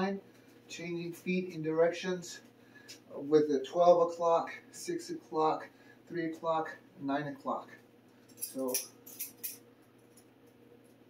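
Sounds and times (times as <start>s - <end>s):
faint steady hum: 0.0s - 11.0s
light metallic clinks: 8.2s - 10.3s.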